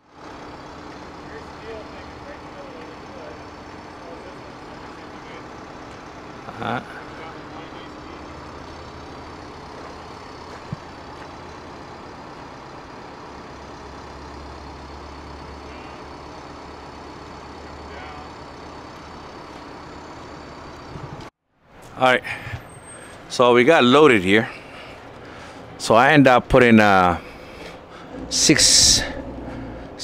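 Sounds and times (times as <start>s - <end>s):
diesel engine running: 0.0s - 30.0s.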